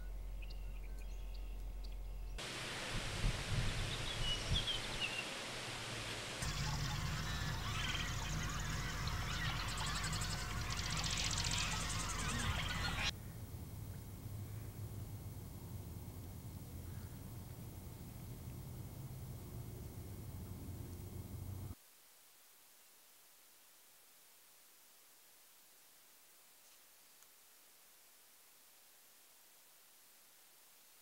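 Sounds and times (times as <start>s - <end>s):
bird chirps: 0.0s - 2.4s, 6.4s - 13.1s
outdoor hiss: 0.0s - 31.0s
bird trill: 6.4s - 13.1s.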